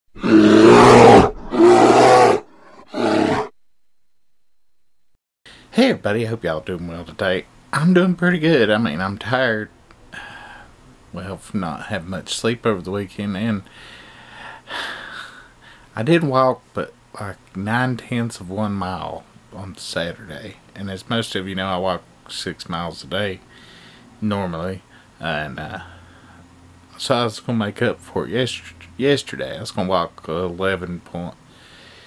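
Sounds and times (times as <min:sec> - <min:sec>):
bear roaring: 0:00.2 - 0:03.6
man breathing: 0:10.1 - 0:10.8, 0:13.6 - 0:15.9, 0:23.5 - 0:24.1, 0:25.8 - 0:26.5, 0:31.5 - 0:32.0.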